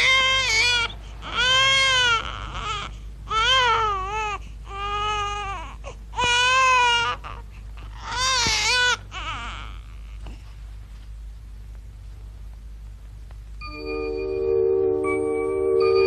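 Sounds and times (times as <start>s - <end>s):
newborn baby crying: 0.0s - 10.4s.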